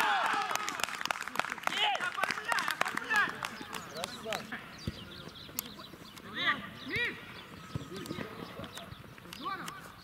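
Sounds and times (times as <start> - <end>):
footballers shouting calls: 0.0 - 1.0, 1.6 - 10.0.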